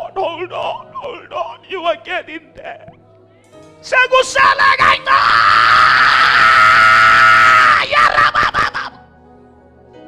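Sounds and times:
soft instrumental music: 0.0s - 5.2s, 8.8s - 10.0s
loud wordless human cry: 3.8s - 9.1s.

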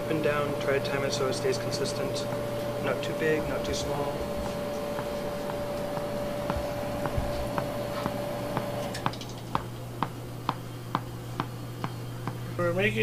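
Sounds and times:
steady hum: 0.0s - 13.0s.

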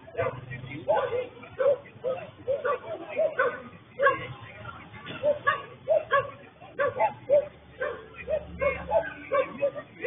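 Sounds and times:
people's voices: 0.0s - 10.0s
dog barking: 0.1s - 4.4s, 5.1s - 10.0s.

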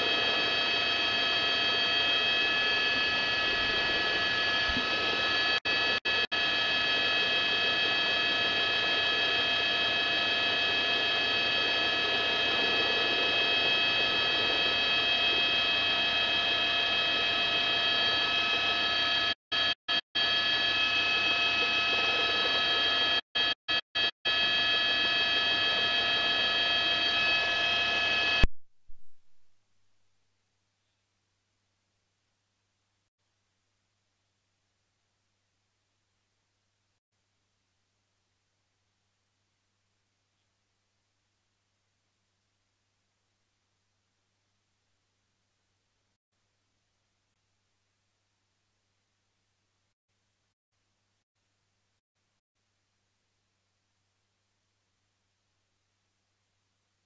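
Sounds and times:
high whining tones: 0.0s - 8.1s
helicopter rush: 0.1s - 19.2s.

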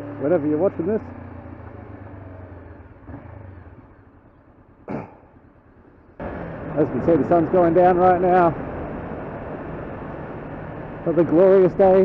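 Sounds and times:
motorcycle engine running: 0.0s - 12.0s
road and wind noise: 0.0s - 12.0s.

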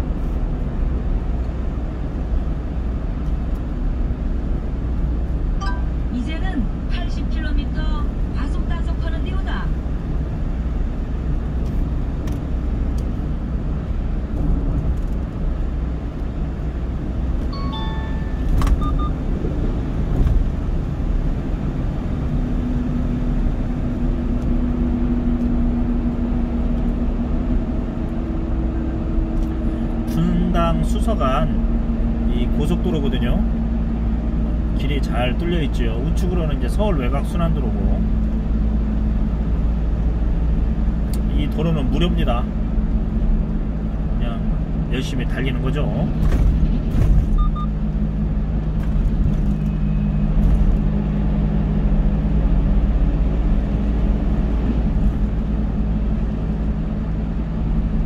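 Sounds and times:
car road and engine rumble: 0.0s - 58.0s
short electronic beep: 5.6s - 6.0s, 17.5s - 19.2s, 47.4s - 47.7s.

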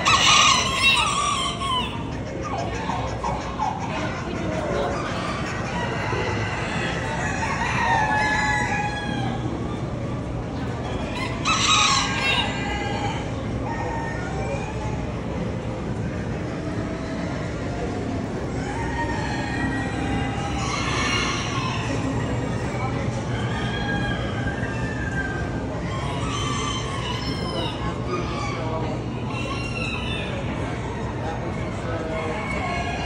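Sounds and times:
roosters crowing: 0.0s - 3.5s, 4.2s - 33.0s
background hubbub: 0.0s - 33.0s.

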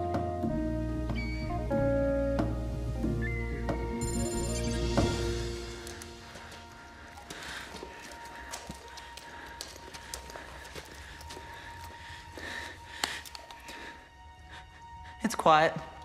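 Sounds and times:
small clicks and drip-like ticks: 5.8s - 13.8s.

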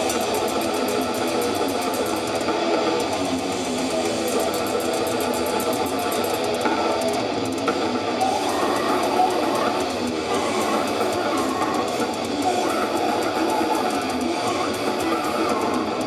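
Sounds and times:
distorted electric guitars: 0.0s - 16.0s
fast drumming: 0.0s - 16.0s.

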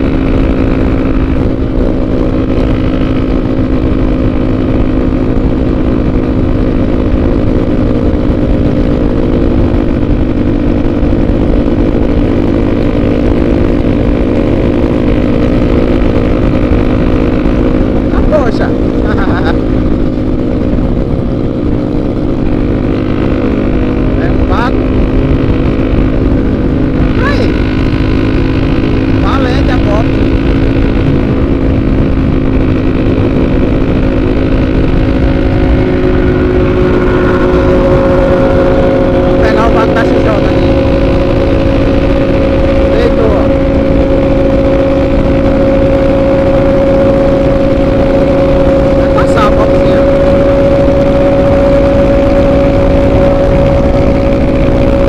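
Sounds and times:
motorcycle engine cruising: 0.0s - 55.0s
wind rushing over microphone: 0.0s - 55.0s.

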